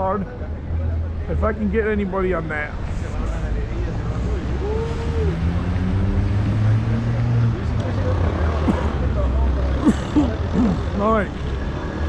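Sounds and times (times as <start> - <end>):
passing voices: 0.0 - 12.0
traffic engine rumble: 0.0 - 12.0.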